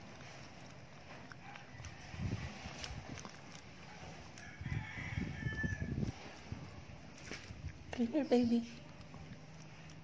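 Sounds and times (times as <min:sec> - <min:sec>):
faint rooster crowing: 0:01.4 - 0:02.6, 0:04.3 - 0:06.4.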